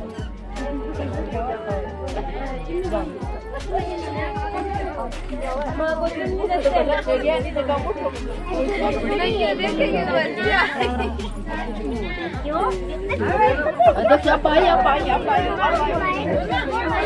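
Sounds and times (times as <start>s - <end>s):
music playing: 0.0s - 17.0s
women talking in crowd babble: 0.0s - 17.0s.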